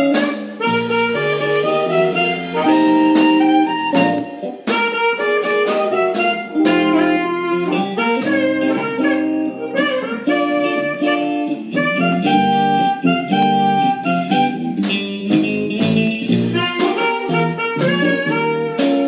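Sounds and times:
drums: 0:00.0 - 0:19.0
electric guitar: 0:00.0 - 0:19.0
keyboard: 0:00.0 - 0:19.0
reed instrument melody: 0:00.0 - 0:19.0.

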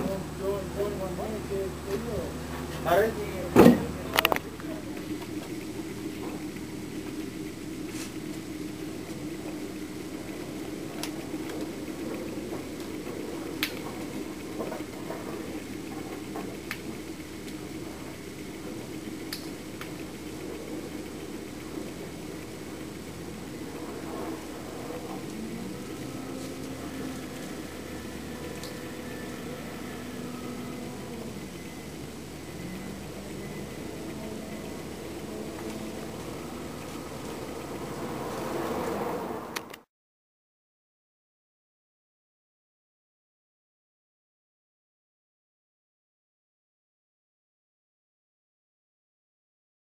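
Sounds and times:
machinery low drone: 0:00.0 - 0:39.9.

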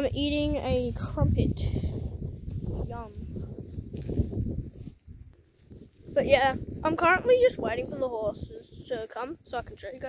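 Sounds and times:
low rumbling: 0:00.0 - 0:08.9.

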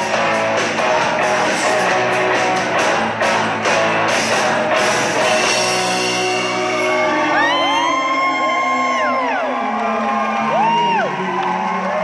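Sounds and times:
rock band chord ringing out: 0:00.0 - 0:07.4
audience cheering and whooping: 0:06.2 - 0:12.0.

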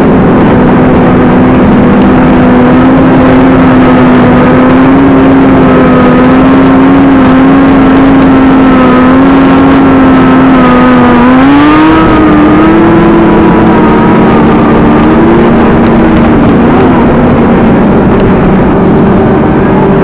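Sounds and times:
motorcycle engine at high revs: 0:00.0 - 0:20.0
wind rush on microphone: 0:00.0 - 0:20.0.

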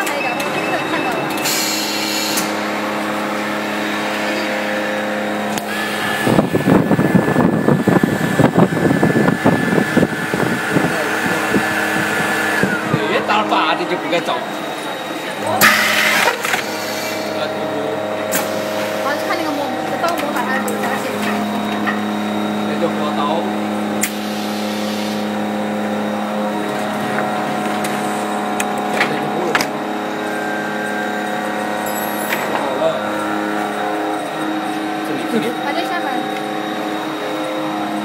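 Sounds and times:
machine hum: 0:00.0 - 0:38.0.

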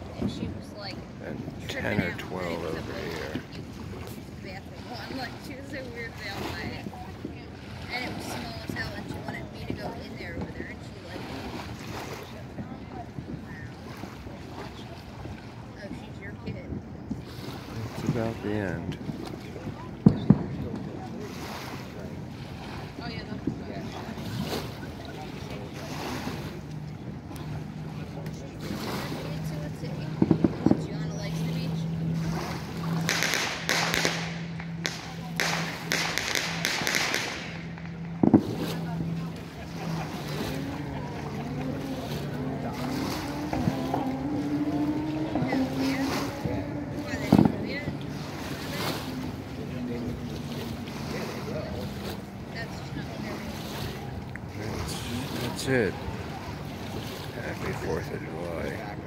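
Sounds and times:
motorboat engine humming: 0:00.0 - 0:59.0
water washing against shore: 0:00.0 - 0:59.0
distant firework bangs: 0:32.8 - 0:39.9.

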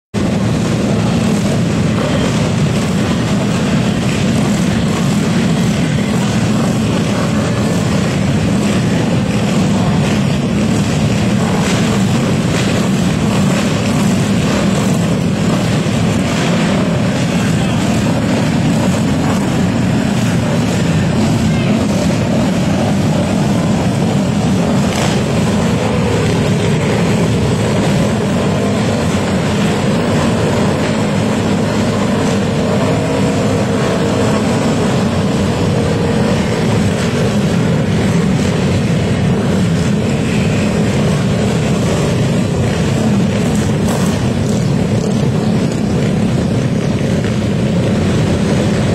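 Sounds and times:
racing motorcycle engines: 0:00.2 - 0:48.9.

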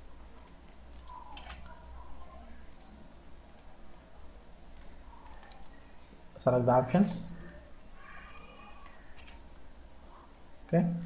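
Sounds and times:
computer mouse clicks: 0:00.0 - 0:01.7, 0:02.7 - 0:04.1, 0:04.7 - 0:05.8, 0:07.0 - 0:07.6, 0:08.2 - 0:09.4
low steady hum: 0:00.0 - 0:11.0.

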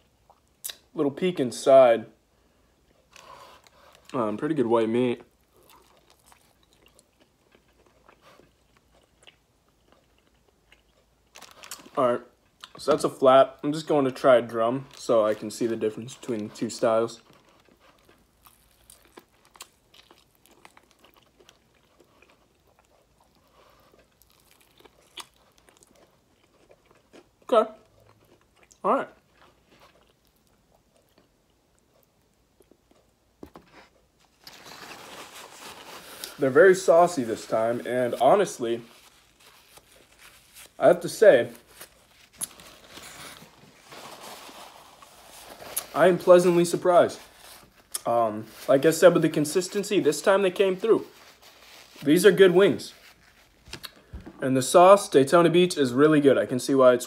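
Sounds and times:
chewing crispy chicken wing: 0:05.4 - 0:12.8, 0:17.2 - 0:33.2
paper napkin rustling: 0:33.5 - 0:53.8.

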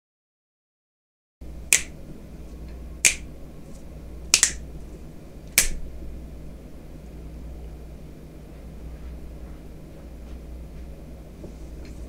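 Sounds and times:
steady low hum: 0:01.4 - 0:12.0
sharp clicks: 0:03.0 - 0:03.3, 0:04.3 - 0:04.6, 0:05.5 - 0:05.8.

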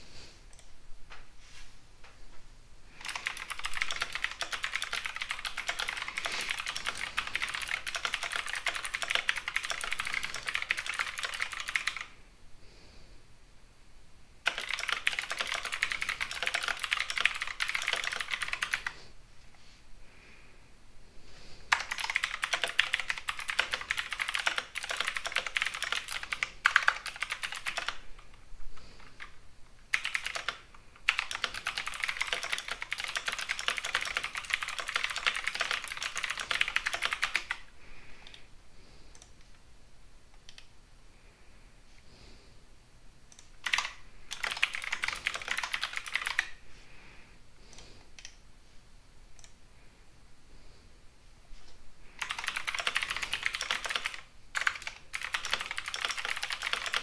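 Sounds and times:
typing on computer keyboard: 0:03.0 - 0:12.1, 0:14.4 - 0:19.0, 0:21.7 - 0:37.6, 0:43.3 - 0:46.5, 0:52.2 - 0:57.0.

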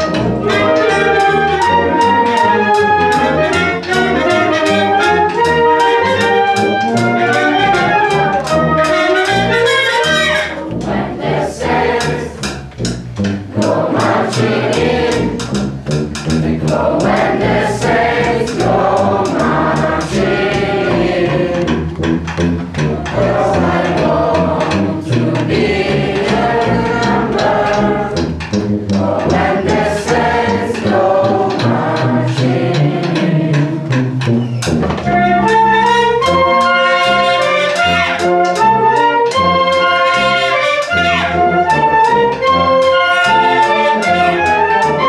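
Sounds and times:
wind orchestra playing: 0:00.0 - 0:12.3, 0:13.4 - 0:45.0
sharp percussive strokes: 0:00.0 - 0:45.0.

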